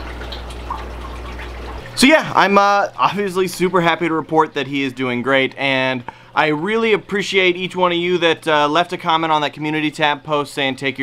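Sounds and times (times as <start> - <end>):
aquarium water trickling: 0.0 - 11.0.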